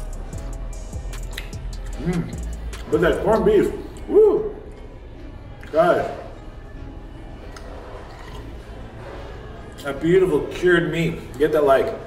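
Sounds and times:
faint background music: 0.0s - 12.0s
man chewing food: 1.0s - 2.9s, 7.4s - 8.8s.

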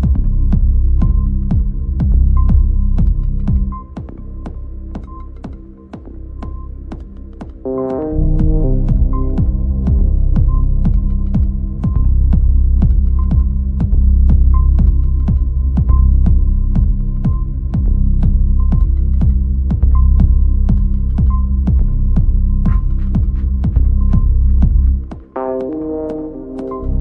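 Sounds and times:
deep bass drone: 0.0s - 27.0s
electronic kick pulse: 0.0s - 27.0s.

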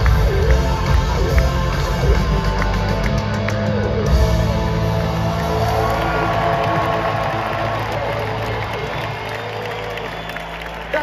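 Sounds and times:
large crowd cheering: 0.0s - 11.0s.

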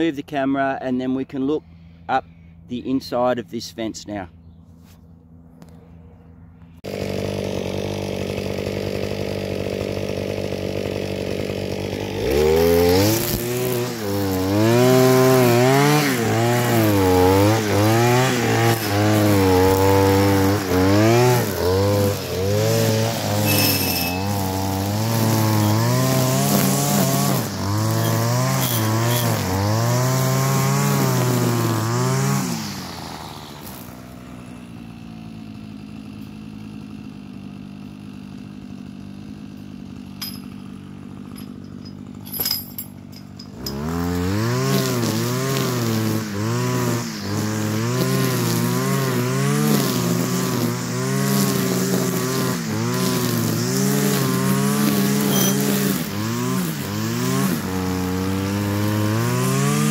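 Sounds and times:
string trimmer engine revving: 6.6s - 59.9s
trimmer line cutting grass: 6.7s - 59.9s.

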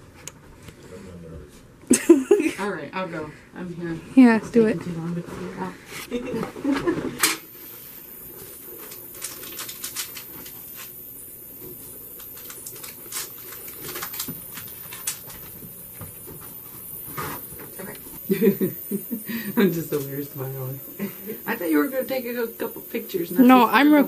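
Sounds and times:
person laughing: 1.9s - 2.6s, 18.3s - 19.9s.

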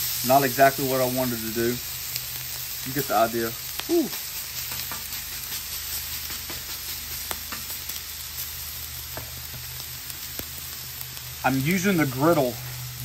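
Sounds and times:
steak sizzling on griddle: 0.0s - 13.0s.

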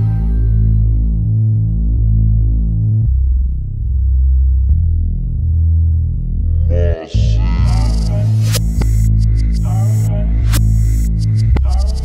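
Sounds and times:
pulsing synthesizer bass drone: 0.0s - 12.0s.

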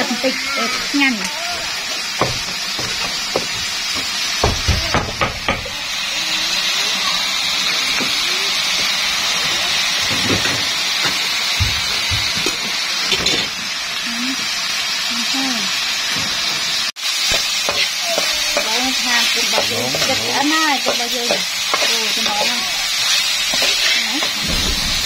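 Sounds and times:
food sizzling in a wok: 0.0s - 25.0s.

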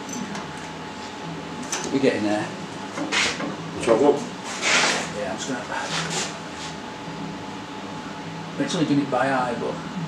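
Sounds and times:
workshop hum: 0.0s - 10.0s.

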